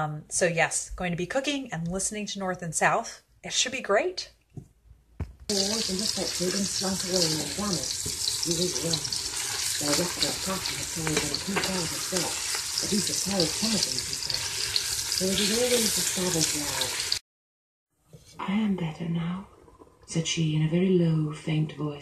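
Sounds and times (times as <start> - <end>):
meat sizzling in a pot: 5.5 - 17.2
spatula stirring meat: 5.5 - 17.2.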